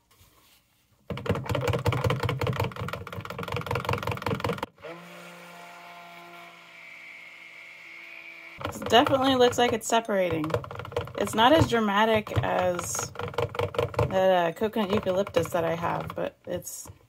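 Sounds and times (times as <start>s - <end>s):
stick blender mixing: 1.1s - 16.5s.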